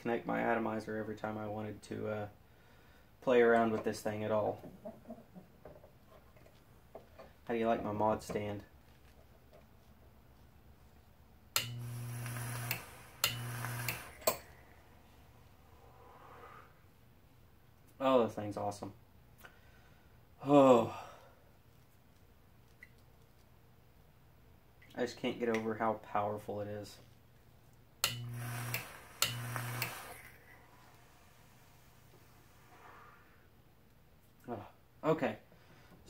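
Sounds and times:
low electrical hum: 0:00.0 - 0:36.0
relay clicking: 0:11.6 - 0:14.4, 0:28.0 - 0:30.2
atomizer hissing: 0:11.8 - 0:14.4, 0:28.2 - 0:33.5.

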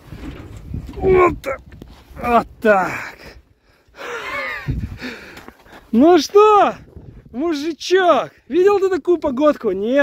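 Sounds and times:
man talking: 0:00.9 - 0:03.4, 0:05.9 - 0:10.0.

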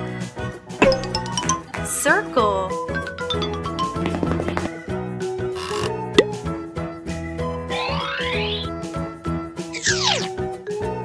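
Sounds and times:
children's background music: 0:00.0 - 0:11.0
cartoon pop: 0:06.2 - 0:06.4.

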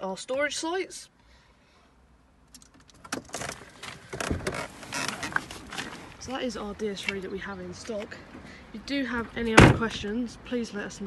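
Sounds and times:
person shifting in car seat: 0:03.0 - 0:06.2.

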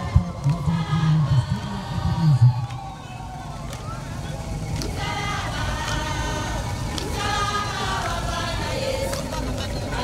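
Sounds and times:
pickup truck engine running: 0:00.0 - 0:10.0
road noise: 0:00.0 - 0:10.0.

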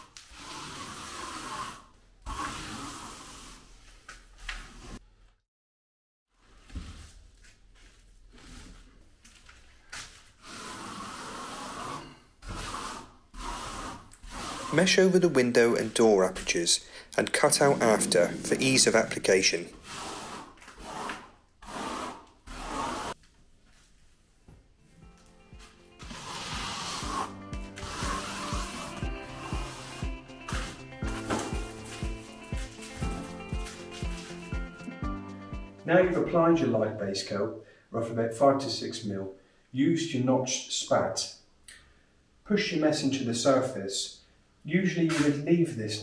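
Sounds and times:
trowel scraping wet render: 0:10.6 - 0:16.6.

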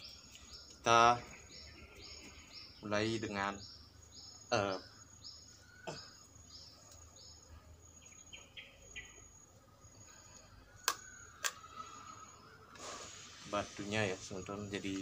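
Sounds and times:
small bird chirping: 0:00.0 - 0:15.0.

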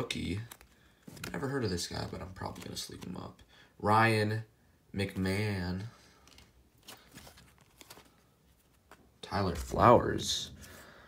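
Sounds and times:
trading cards rustling: 0:00.0 - 0:03.5, 0:06.0 - 0:09.8.

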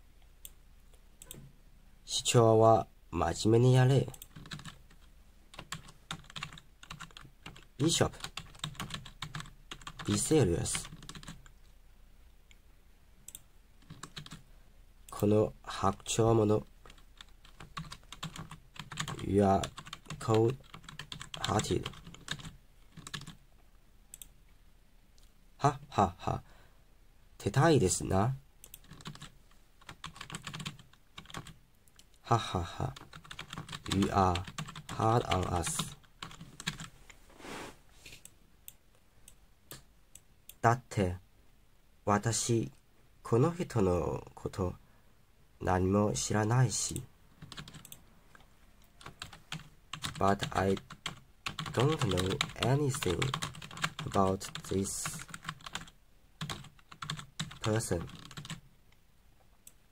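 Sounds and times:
keyboard typing: 0:04.0 - 0:11.6, 0:13.3 - 0:14.4, 0:16.6 - 0:23.4, 0:28.6 - 0:31.6, 0:32.8 - 0:36.9, 0:47.4 - 0:48.0, 0:49.0 - 0:58.6.

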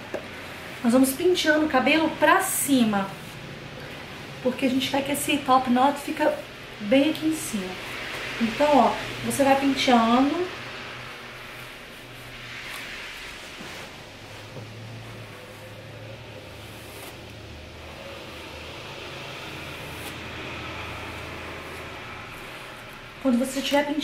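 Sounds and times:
hairbrush rustling strokes: 0:00.0 - 0:24.0.

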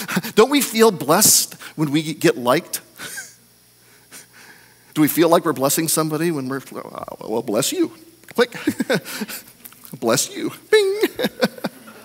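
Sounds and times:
man laughing: 0:03.0 - 0:03.4, 0:08.5 - 0:09.5, 0:10.8 - 0:12.0.

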